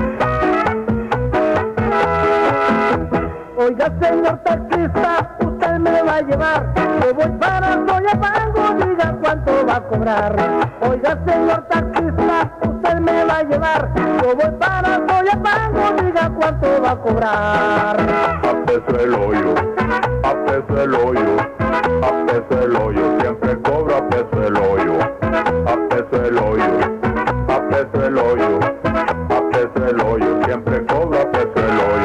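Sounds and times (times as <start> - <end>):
tropical dance music: 0.0 - 32.0.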